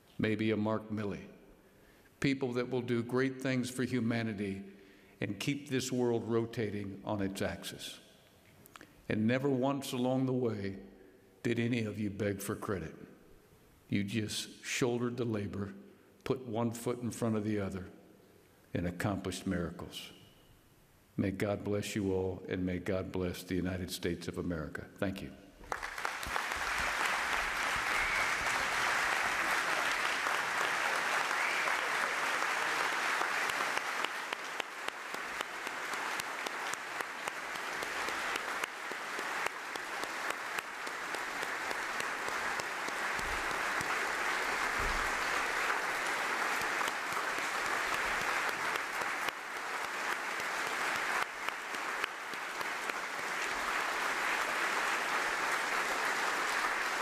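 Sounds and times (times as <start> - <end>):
audience applauding: 25.6 - 57.0.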